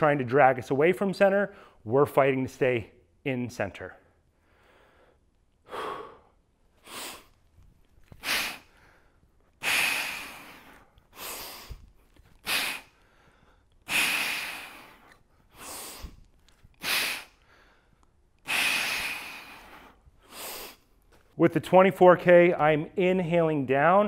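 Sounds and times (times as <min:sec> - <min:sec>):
man breathing hard: 0:04.3 - 0:07.4, 0:08.0 - 0:21.1.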